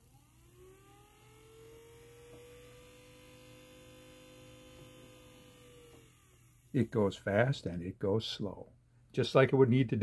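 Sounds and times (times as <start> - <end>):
small motor whine: 0.0 - 7.0.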